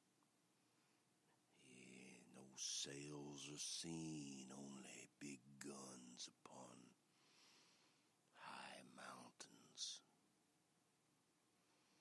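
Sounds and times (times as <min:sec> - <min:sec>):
man whispering: 0:01.5 - 0:07.0, 0:08.3 - 0:10.1
breathy hiss: 0:07.1 - 0:09.2.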